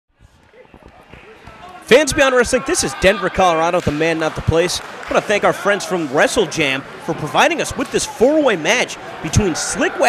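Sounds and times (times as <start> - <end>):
faint crowd voices: 0.2 - 10.0
man speaking: 1.8 - 10.0.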